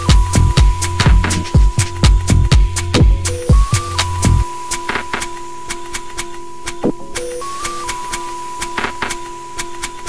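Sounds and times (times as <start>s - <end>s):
high sine tone: 0.0s - 10.0s
low held tone: 0.0s - 10.0s.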